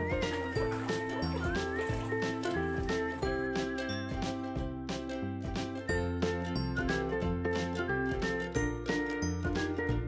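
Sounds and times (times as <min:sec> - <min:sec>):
upbeat background music: 0:00.0 - 0:10.0.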